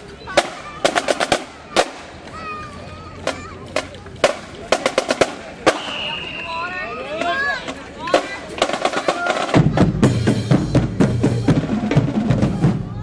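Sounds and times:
people's voices: 0:00.0 - 0:13.0
marching band drums striking: 0:00.3 - 0:02.1, 0:03.2 - 0:06.6, 0:07.2 - 0:13.0.

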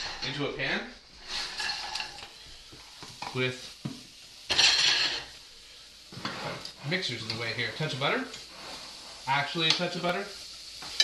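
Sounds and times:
vegetables pattering into frying pan: 0:00.0 - 0:11.0.

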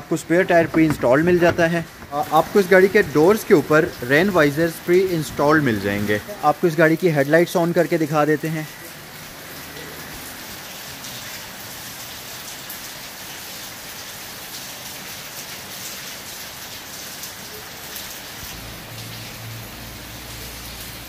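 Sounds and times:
rain hissing: 0:00.0 - 0:21.0
raindrops pattering: 0:00.0 - 0:21.0.

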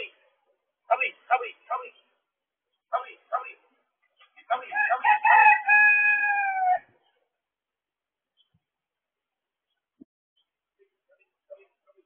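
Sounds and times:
rooster crowing: 0:04.7 - 0:06.9.

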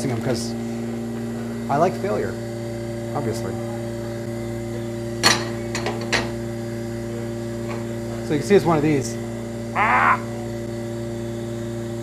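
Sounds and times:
lab machinery hum: 0:00.0 - 0:12.0.

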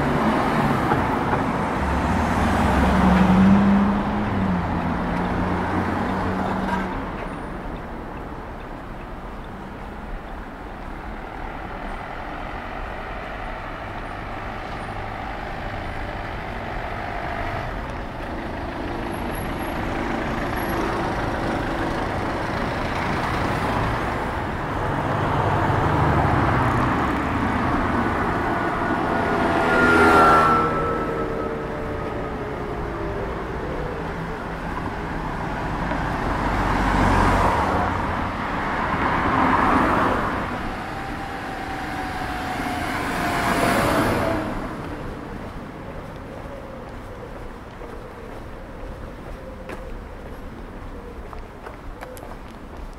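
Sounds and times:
cars driving past: 0:00.0 - 0:52.9.

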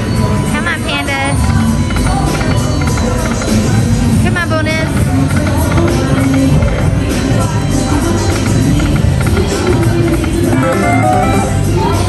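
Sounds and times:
loud music: 0:00.0 - 0:12.0.

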